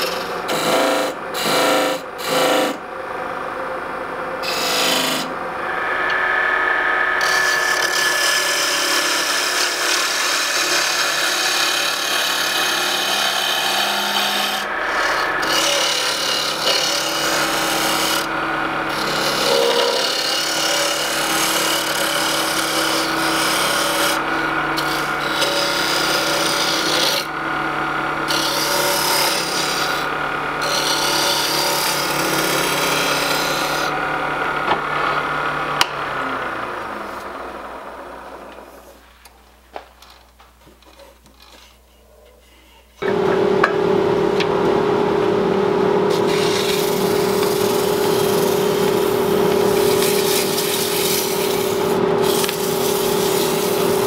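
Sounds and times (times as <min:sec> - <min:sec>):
turning tool scraping wood: 0:00.0 - 0:02.8, 0:04.4 - 0:05.3, 0:07.1 - 0:27.4, 0:28.2 - 0:34.0, 0:40.8 - 0:43.1, 0:46.1 - 0:54.0
wood lathe humming: 0:00.0 - 0:38.9, 0:43.0 - 0:54.0.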